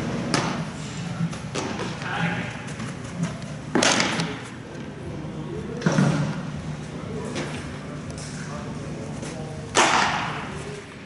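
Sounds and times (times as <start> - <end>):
baseball smack echoing: 3.7 - 4.4, 9.7 - 10.5.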